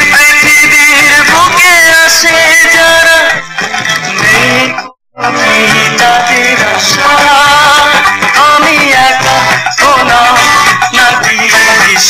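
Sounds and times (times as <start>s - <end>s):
acoustic guitar: 0.0s - 12.0s
person singing: 0.0s - 12.0s.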